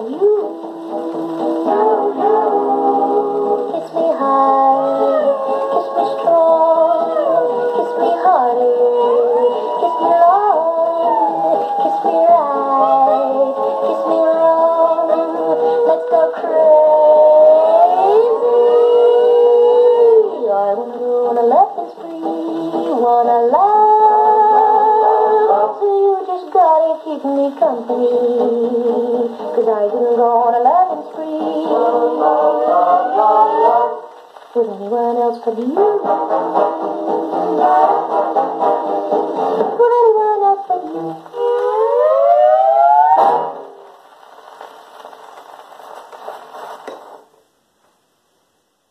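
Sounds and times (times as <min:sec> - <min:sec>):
orchestra and chorus on gramophone: 0:00.0 - 0:47.2
record surface hiss and crackle: 0:00.0 - 0:48.9.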